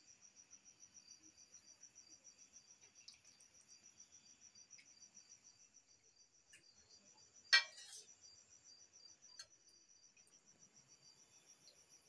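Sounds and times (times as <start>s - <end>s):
insect chirping: 0.0s - 12.0s.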